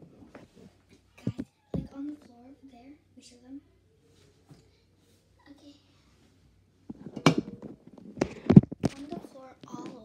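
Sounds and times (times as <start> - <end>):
camera rubbing and rustling: 6.9 - 9.9.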